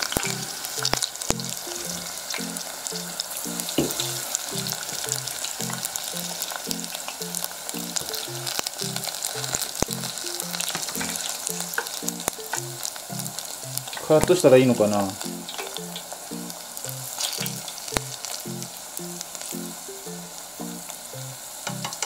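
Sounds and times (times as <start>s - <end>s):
oil sizzling with crackles and pops: 0.0s - 22.0s.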